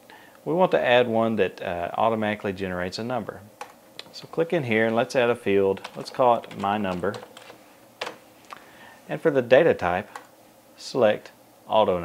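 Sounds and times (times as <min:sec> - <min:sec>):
computer keyboard keystrokes: 0:05.8 - 0:08.2.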